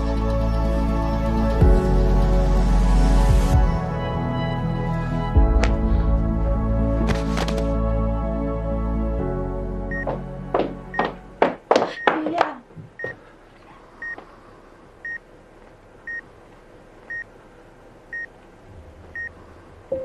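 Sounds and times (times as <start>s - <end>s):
patient monitor beeping: 9.9s - 10.2s, 14.0s - 14.2s, 15.0s - 15.3s, 17.1s - 17.3s, 18.1s - 18.3s.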